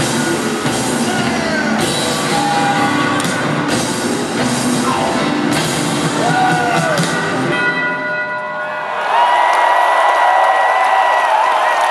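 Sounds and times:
crowd cheering: 5.8s - 7.7s, 8.4s - 11.9s
bell ringing steady tones: 7.4s - 9.1s.

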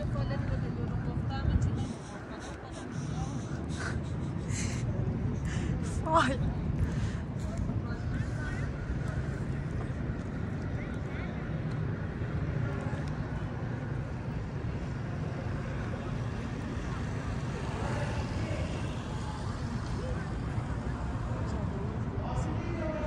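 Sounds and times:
faint voices: 0.0s - 23.0s
low outdoor rumble: 0.0s - 23.0s.

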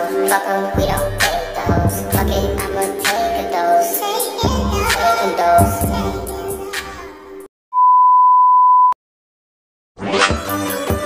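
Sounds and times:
electronic beep: 7.8s - 9.0s.

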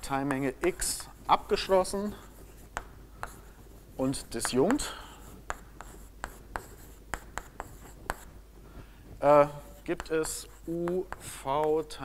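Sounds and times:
chalk tapping and scraping on blackboard: 0.0s - 8.4s, 9.1s - 12.0s.

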